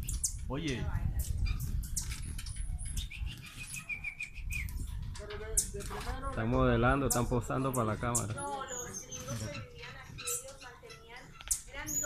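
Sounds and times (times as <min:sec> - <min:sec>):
hummingbirds chipping and twittering: 0:00.0 - 0:12.0.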